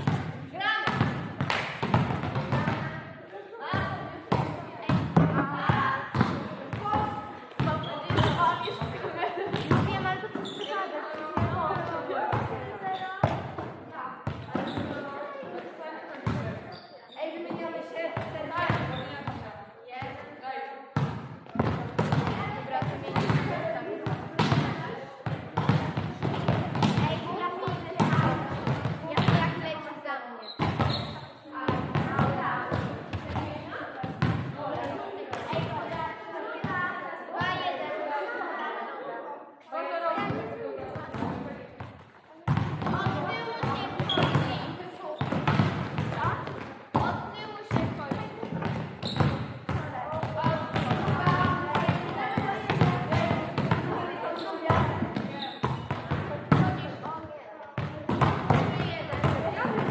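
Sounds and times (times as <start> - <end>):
volleyballs struck and bouncing: 0.0 - 3.1, 3.7 - 10.6, 11.2 - 16.7, 17.5 - 20.2, 20.9 - 29.8, 30.6 - 37.6, 40.2 - 59.9
players' voices: 0.0 - 59.9.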